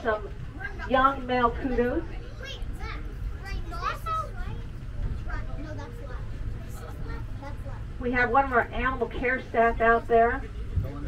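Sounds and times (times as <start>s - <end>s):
tram rumbling: 0.0s - 11.0s
children chattering and calling out: 0.2s - 8.1s.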